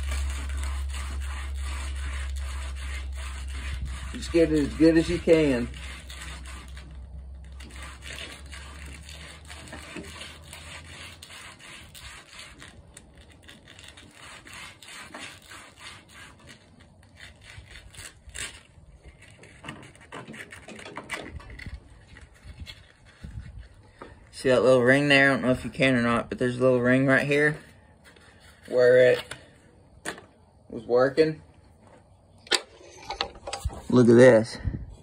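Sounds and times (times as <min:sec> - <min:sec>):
gritty rubbing and scraping: 0:00.0 - 0:35.0.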